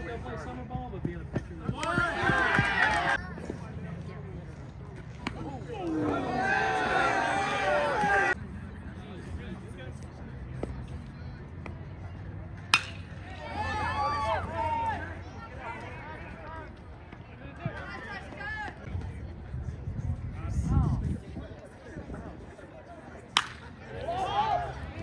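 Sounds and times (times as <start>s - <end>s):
voices calling out: 1.6s - 3.7s, 5.0s - 8.4s, 11.5s - 18.8s, 23.3s - 25.0s
bat hitting baseball: 12.6s - 13.2s, 23.3s - 23.8s.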